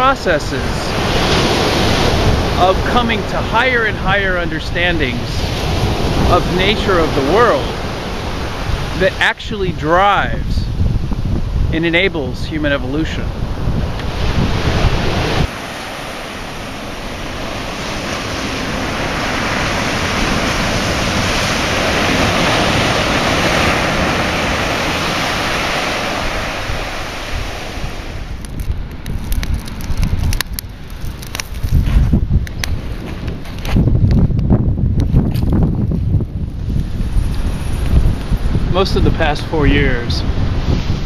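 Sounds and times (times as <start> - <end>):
ocean surf washing over rocks: 0.0 - 31.8
wind buffeting microphone: 0.0 - 41.0.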